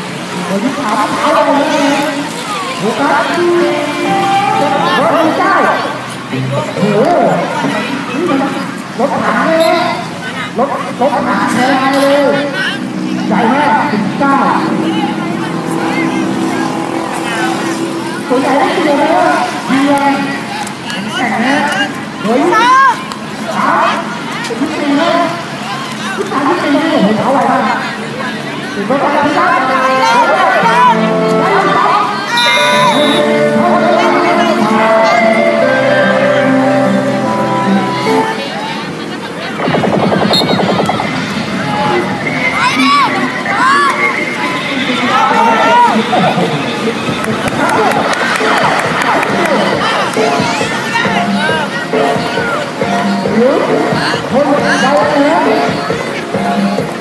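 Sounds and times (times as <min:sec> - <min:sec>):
voices calling out: 0:00.0 - 0:57.0
children shouting and cheering: 0:29.8 - 0:38.9, 0:41.3 - 0:46.0, 0:47.4 - 0:53.2.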